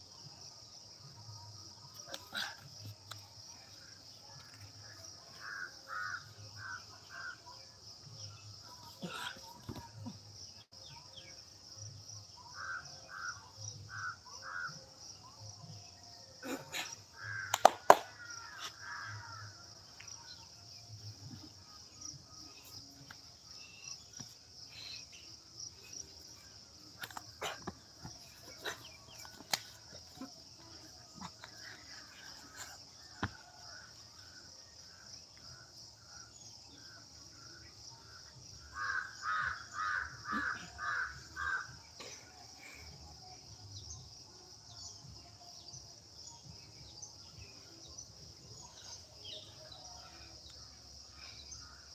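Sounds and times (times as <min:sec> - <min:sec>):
high insect drone: 0:00.1 - 0:51.9.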